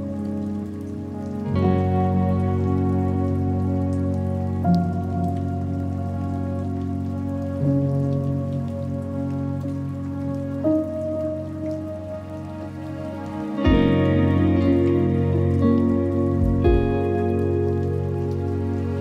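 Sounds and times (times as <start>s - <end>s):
ambient music with sustained chords: 0.0s - 19.0s
rain falling on water: 0.0s - 19.0s.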